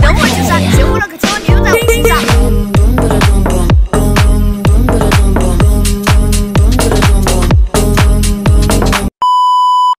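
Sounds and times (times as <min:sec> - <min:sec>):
electronic dance music: 0:00.0 - 0:09.1.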